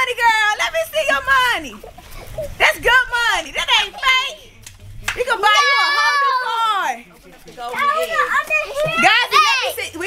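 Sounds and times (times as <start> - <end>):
children shouting and calling out: 5.3 - 6.9, 7.7 - 10.0.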